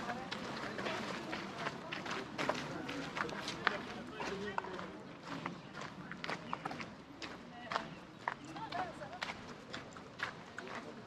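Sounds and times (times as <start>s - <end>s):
footsteps on paved path: 0.0s - 11.0s
people talking: 0.0s - 11.0s.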